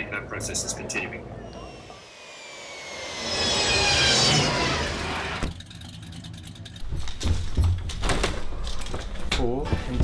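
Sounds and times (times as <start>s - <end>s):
low hum: 1.2s - 7.2s
whining rush of passing craft: 1.6s - 6.5s.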